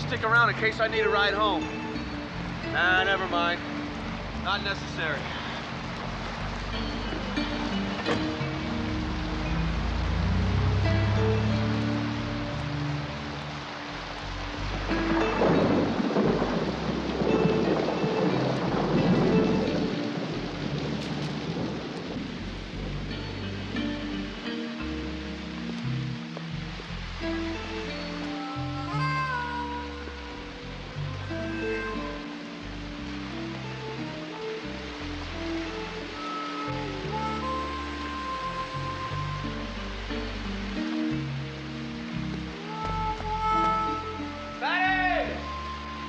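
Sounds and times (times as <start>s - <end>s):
background music sustained notes: 0.0s - 46.0s
heavy rain: 0.0s - 46.0s.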